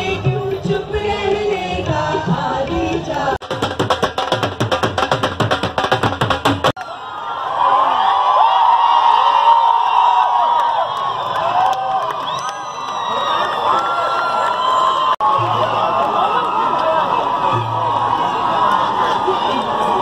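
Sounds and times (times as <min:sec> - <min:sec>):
drums beaten with sticks: 0:01.7 - 0:06.8
crowd shouting and cheering: 0:06.6 - 0:20.0.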